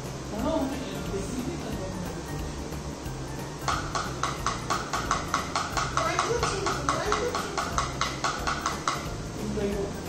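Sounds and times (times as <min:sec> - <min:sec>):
drumsticks on practice pad: 0:03.6 - 0:09.4.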